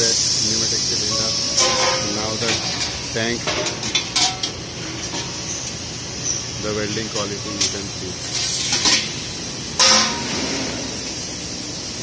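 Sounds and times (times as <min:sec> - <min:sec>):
steady hiss: 0:00.0 - 0:12.0
sheet metal clanking: 0:01.6 - 0:05.3, 0:09.8 - 0:10.9.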